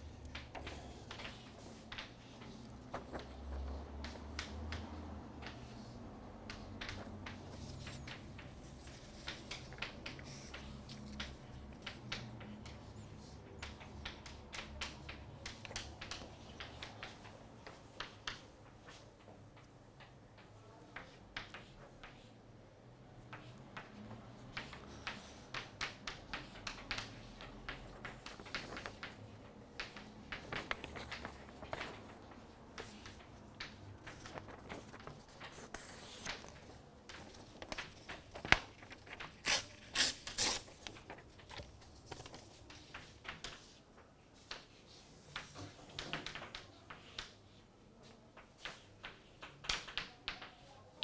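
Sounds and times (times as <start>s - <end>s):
chalk tapping and scraping: 0.0s - 51.0s.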